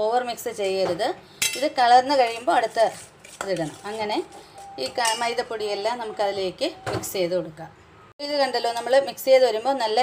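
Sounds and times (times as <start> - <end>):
spoon scraping metal bowl: 1.4 - 5.4.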